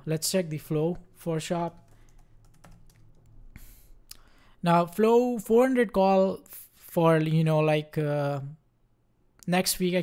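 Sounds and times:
soft keyboard typing: 1.6 - 3.5.

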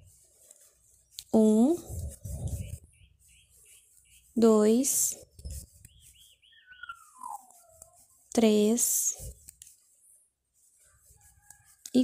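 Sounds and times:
bird chirping and whistling: 5.9 - 7.8.

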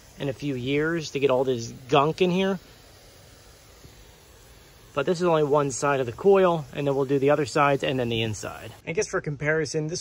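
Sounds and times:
garden sprayer hissing: 0.0 - 8.9.

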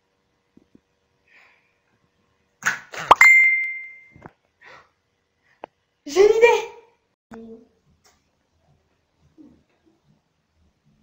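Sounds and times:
bright chime: 3.2 - 4.2.

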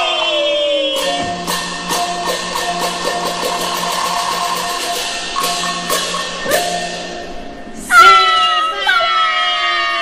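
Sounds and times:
plucked-string notes: 1.0 - 7.7.

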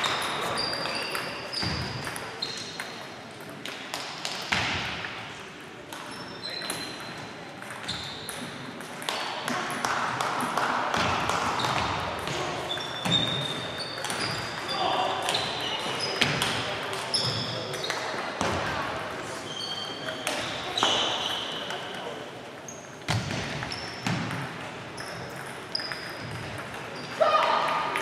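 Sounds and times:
murmur of voices: 4.8 - 23.1
table tennis balls clicking: 5.9 - 11.9, 23.6 - 27.0.

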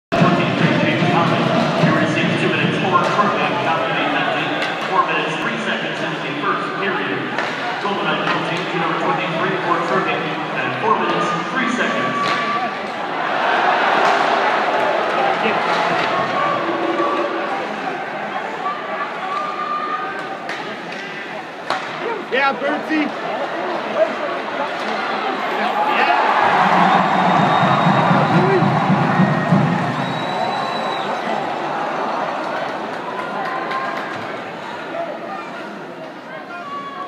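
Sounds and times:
crowd talking and calling out: 0.1 - 37.0.

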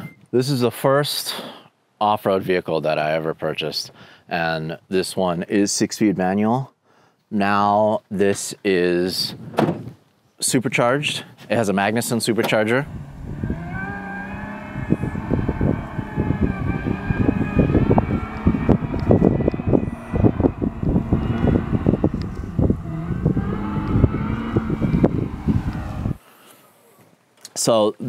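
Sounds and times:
wind buffeting: 12.6 - 26.2
engine working hard: 12.8 - 26.2.

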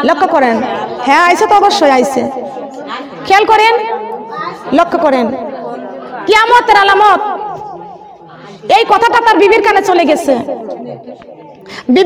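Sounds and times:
woman preaching melodically: 6.2 - 7.5, 8.6 - 10.6.

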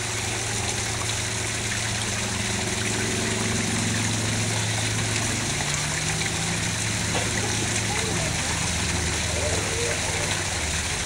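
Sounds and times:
constant low hum: 0.0 - 11.0
running water rushing: 0.0 - 11.0.

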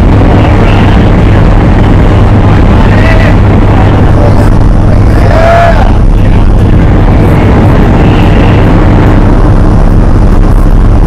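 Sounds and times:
propeller aircraft engine running: 0.0 - 11.0.

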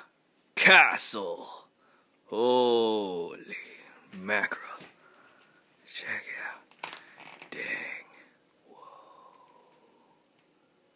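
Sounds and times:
person whispering and breathing: 5.8 - 10.3
faint steady tone: 7.8 - 10.9.

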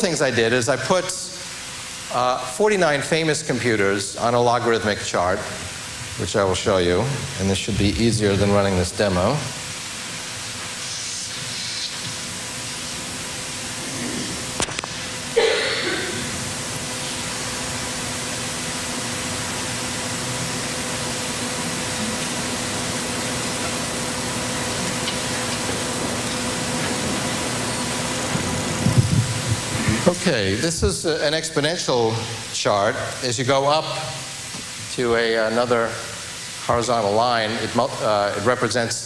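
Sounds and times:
faint electrical hum: 0.0 - 39.0
steady hiss: 0.0 - 39.0.

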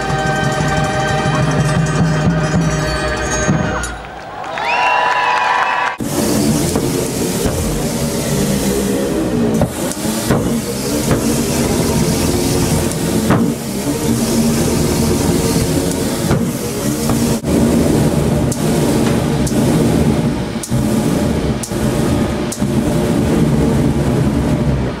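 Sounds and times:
flame organ pipe tones: 0.0 - 25.0
burner rushing: 3.7 - 25.0.

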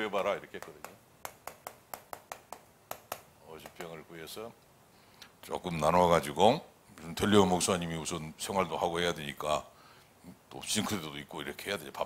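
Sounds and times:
chalk tapping on chalkboard: 0.5 - 3.9.

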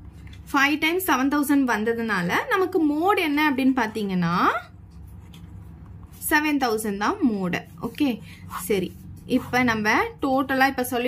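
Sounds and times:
pen scratching on paper: 7.6 - 9.9.

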